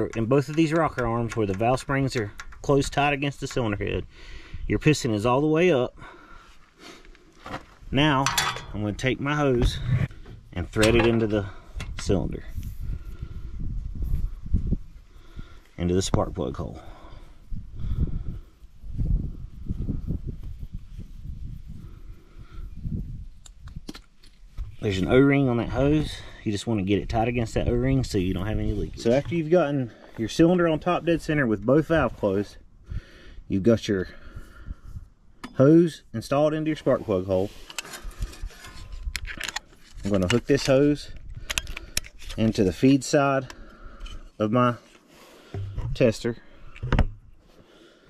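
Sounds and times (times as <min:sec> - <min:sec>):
sharp clicks: 0:00.0 - 0:02.8
metallic clicks of hose fitting: 0:00.0 - 0:03.6, 0:37.6 - 0:46.0
rubber hose rubbing and knocking: 0:45.5 - 0:47.2.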